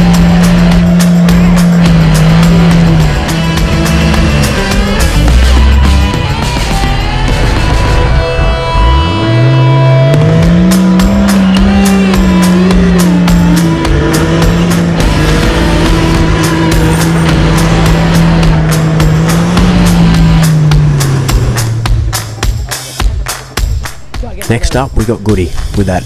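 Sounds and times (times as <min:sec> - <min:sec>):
engine revving hard: 0:00.0 - 0:23.0
music with steady beat: 0:00.0 - 0:26.0.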